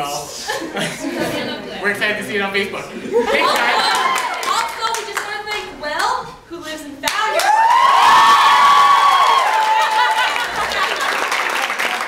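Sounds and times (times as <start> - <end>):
people cheering: 3.3 - 5.0, 7.2 - 12.0
people clapping: 3.4 - 6.1, 7.0 - 12.0
long whoop: 7.4 - 10.3.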